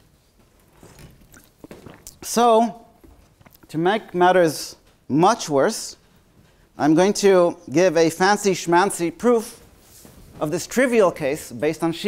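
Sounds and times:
man swallowing water: 0:00.8 - 0:03.7.

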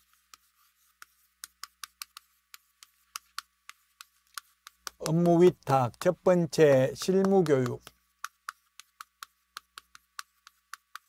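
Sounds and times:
chalk tapping on chalkboard: 0:00.0 - 0:11.0.

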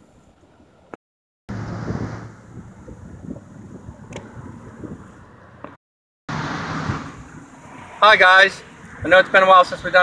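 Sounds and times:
wind buffeting microphone: 0:01.5 - 0:05.4
road traffic rumble: 0:01.5 - 0:10.0.

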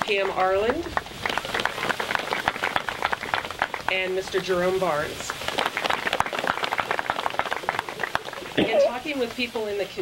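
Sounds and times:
crowd applauding: 0:00.0 - 0:09.3.

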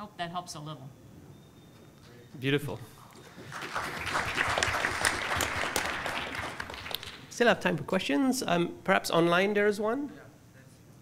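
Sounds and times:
audience applauding: 0:03.2 - 0:07.4.

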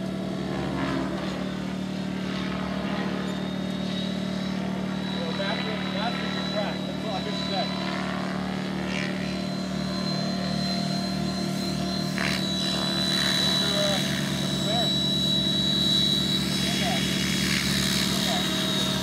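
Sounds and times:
constant high whine: 0:00.0 - 0:19.0
model helicopter engine buzz: 0:00.0 - 0:19.0.

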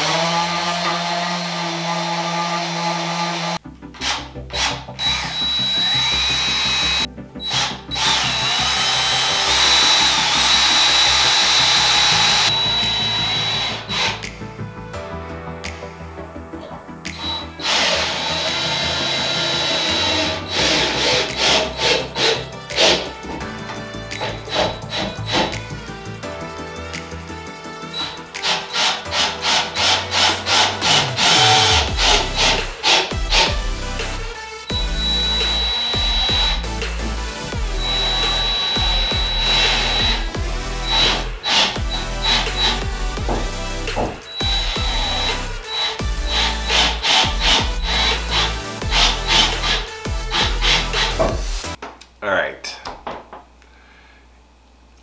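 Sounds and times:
electric sander on wood: 0:00.0 - 0:03.6, 0:17.1 - 0:23.1, 0:37.7 - 0:51.3
background music with steady beat: 0:03.6 - 0:52.0.

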